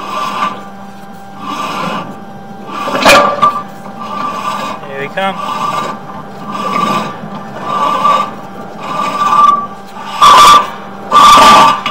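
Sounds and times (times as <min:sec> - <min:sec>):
cable scraping against pipe: 0:00.0 - 0:11.9.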